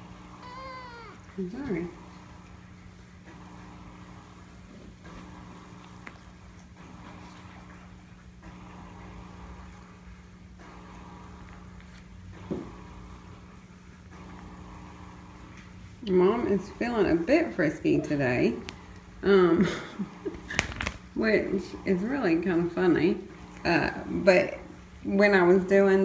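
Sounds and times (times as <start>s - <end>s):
cat call: 0.4s - 1.3s.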